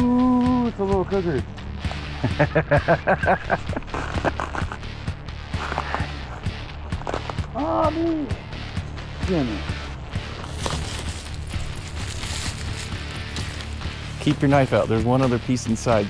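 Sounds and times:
plastic wrapping crinkling: 0:10.4 - 0:13.9.

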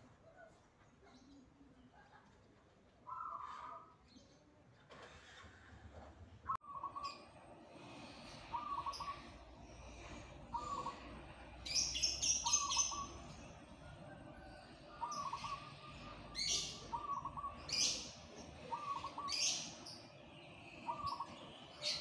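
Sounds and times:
dove cooing: 0:10.0 - 0:13.3, 0:14.4 - 0:19.7
bird's high chirps: 0:11.7 - 0:13.3.

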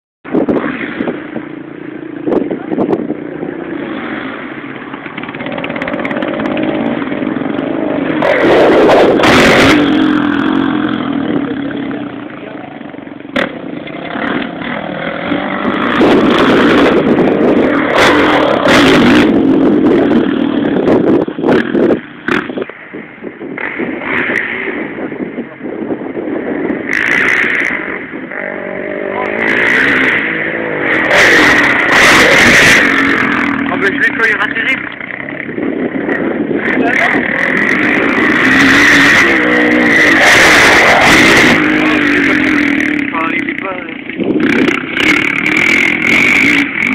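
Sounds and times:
dirt bike engines revving: 0:00.3 - 0:46.9.

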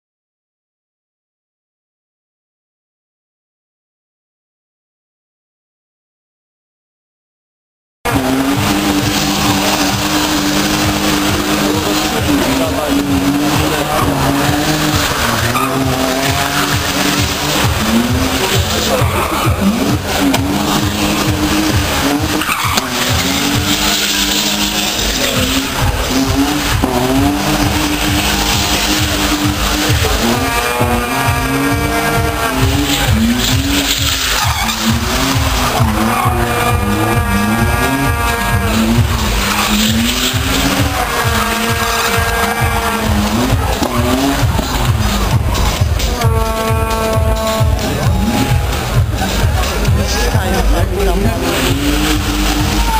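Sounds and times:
car engine revving: 0:08.1 - 0:52.9
tyres squealing: 0:08.1 - 0:52.9.

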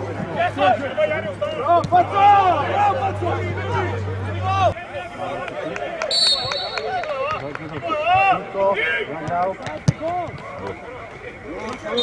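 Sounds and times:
footballers shouting: 0:00.0 - 0:12.0
high whistle blast: 0:06.1 - 0:06.9.

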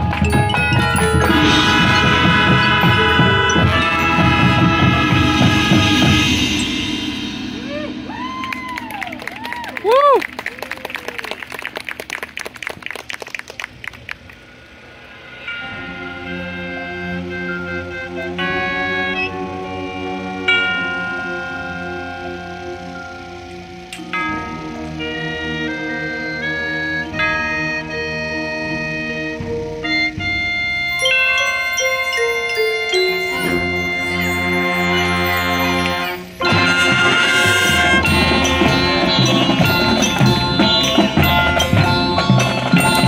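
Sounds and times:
marching band brass and percussion: 0:00.0 - 0:43.0
spectators cheering: 0:07.6 - 0:13.9.

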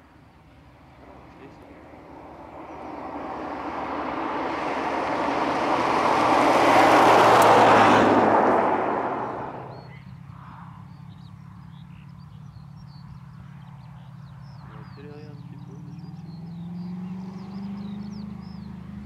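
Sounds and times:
sports car driving past: 0:00.2 - 0:10.2, 0:12.4 - 0:19.0.

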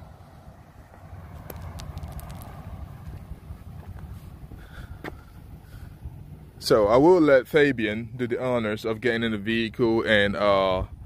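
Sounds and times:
wind rumble on microphone: 0:00.0 - 0:07.2, 0:07.8 - 0:11.0.

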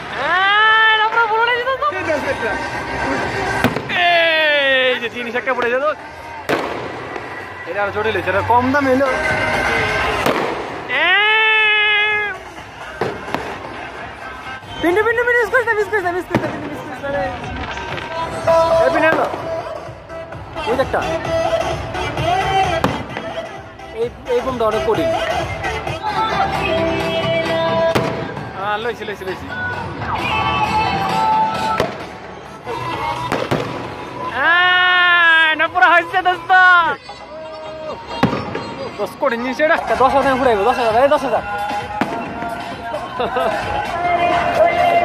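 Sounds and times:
firework bang: 0:03.6 - 0:04.1, 0:06.5 - 0:07.3, 0:10.2 - 0:10.8, 0:13.0 - 0:13.8, 0:27.9 - 0:28.4, 0:33.3 - 0:33.9, 0:38.2 - 0:38.7
firework crackle: 0:09.7 - 0:12.1, 0:16.1 - 0:19.6, 0:32.8 - 0:34.9.

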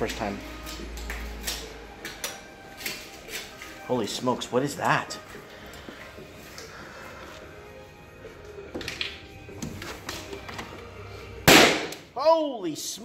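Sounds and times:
nail gun bang: 0:11.5 - 0:12.0.

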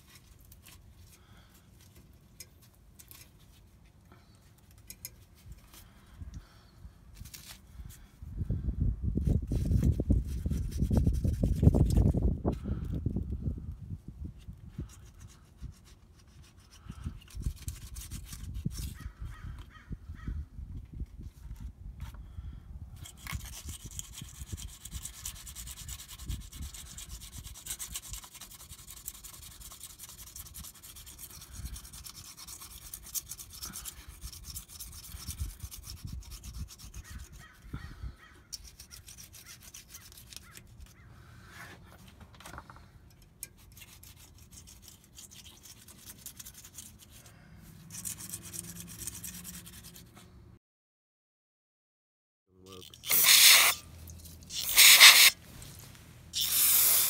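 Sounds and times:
plastic scraper scratching metal: 0:52.9 - 0:53.8, 0:54.5 - 0:55.4.

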